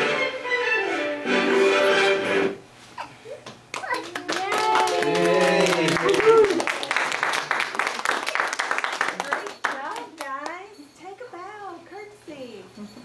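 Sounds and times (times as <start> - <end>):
people clapping: 3.4 - 10.7.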